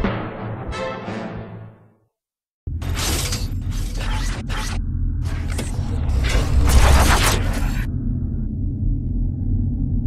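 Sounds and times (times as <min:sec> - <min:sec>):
low rumble: 0:04.8 - 0:10.0.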